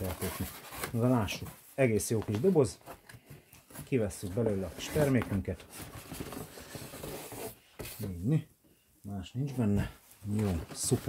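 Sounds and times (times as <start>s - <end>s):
cardboard scraping on cardboard: 3.8s - 8.2s.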